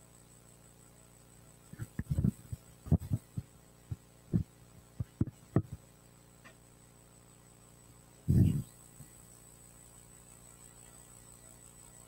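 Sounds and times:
dull thumps and knocks: 4.3s - 5.8s.

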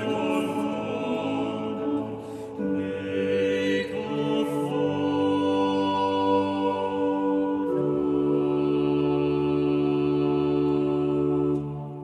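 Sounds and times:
vocal ensemble holding a chord: 0.0s - 12.0s.

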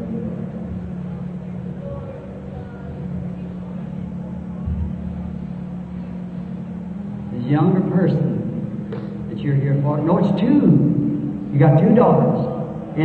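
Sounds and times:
faint murmured voices: 0.0s - 13.0s
steady low hum: 0.0s - 13.0s.

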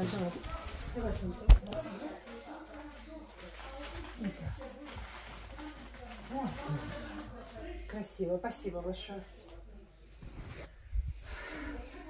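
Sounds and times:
faint muffled voices talking: 0.0s - 12.0s.

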